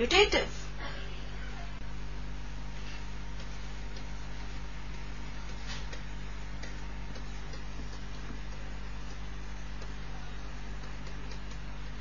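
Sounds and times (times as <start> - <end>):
low electrical hum: 0.0 - 12.0
stylus tapping on pen tablet: 5.9 - 10.0.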